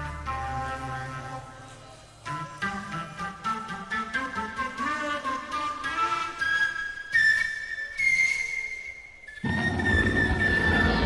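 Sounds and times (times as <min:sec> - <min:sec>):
flute notes: 0:00.0 - 0:11.0.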